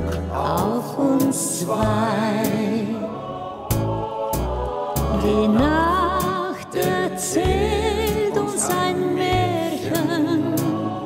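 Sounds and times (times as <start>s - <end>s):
bass notes: 0.0s - 2.4s, 3.6s - 9.7s
choir-like keyboard pad chords: 0.0s - 11.0s.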